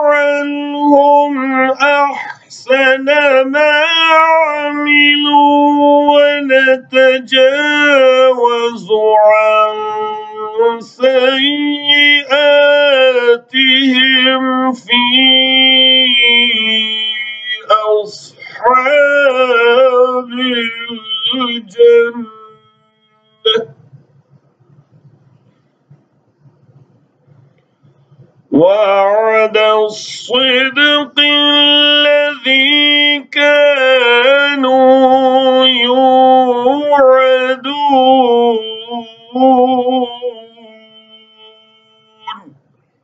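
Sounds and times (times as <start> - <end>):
man chanting recitation: 0.0 - 24.0, 28.4 - 42.5.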